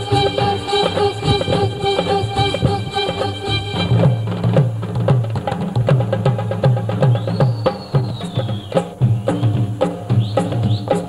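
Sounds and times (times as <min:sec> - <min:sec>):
high gliding tone: 0:00.0 - 0:05.4
drums and hand percussion: 0:00.0 - 0:11.0.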